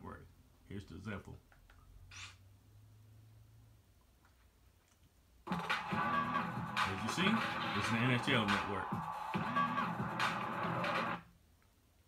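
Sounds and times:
sports broadcast with music: 0:05.5 - 0:11.3.

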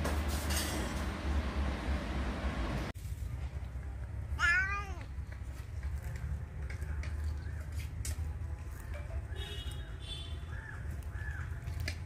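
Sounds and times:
cat meowing: 0:04.3 - 0:05.1.

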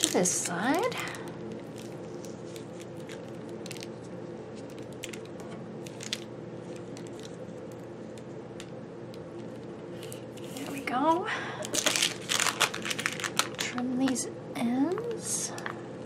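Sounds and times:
paper crinkling: 0:00.0 - 0:08.3, 0:11.6 - 0:14.0
steady low hum: 0:00.0 - 0:16.0.

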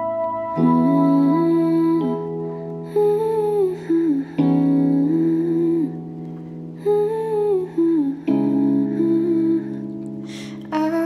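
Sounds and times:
held chords: 0:00.0 - 0:11.0
woman humming a melody: 0:00.6 - 0:06.0, 0:06.8 - 0:10.0.

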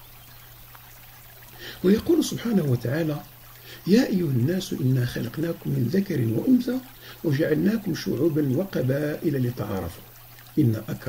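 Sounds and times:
faint hiss: 0:00.0 - 0:11.0
low electrical hum: 0:00.0 - 0:11.0
man's amplified speech: 0:10.6 - 0:11.0.

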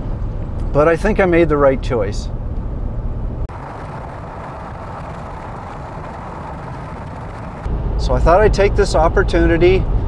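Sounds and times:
car road noise at highway speed: 0:00.0 - 0:10.0.

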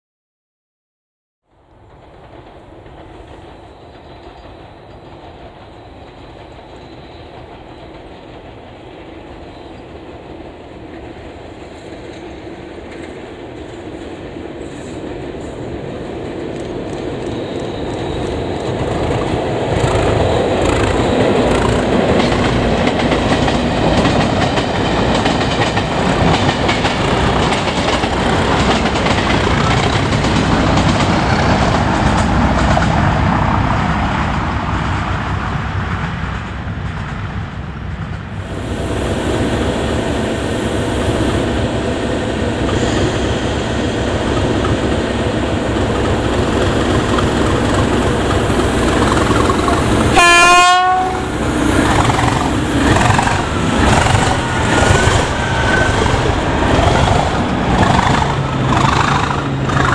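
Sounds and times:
diesel locomotives passing: 0:01.5 - 0:59.9
wheels clicking over rail joints: 0:01.7 - 0:33.3, 0:44.2 - 0:50.2, 0:50.8 - 0:59.9.

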